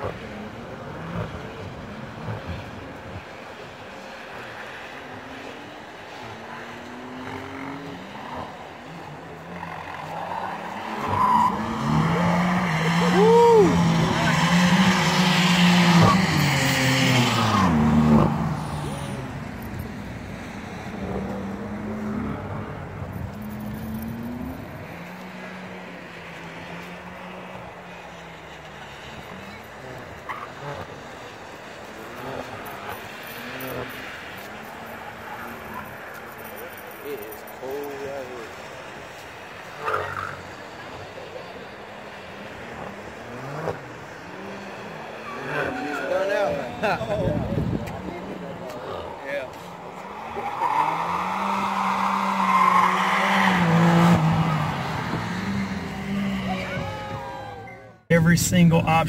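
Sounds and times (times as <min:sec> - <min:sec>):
race car engine revving: 0:00.0 - 0:57.2
tyres squealing: 0:49.0 - 0:57.0.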